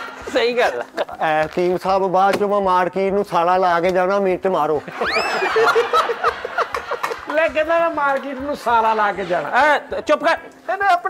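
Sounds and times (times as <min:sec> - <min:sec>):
men laughing: 0:00.0 - 0:01.4, 0:04.8 - 0:09.8.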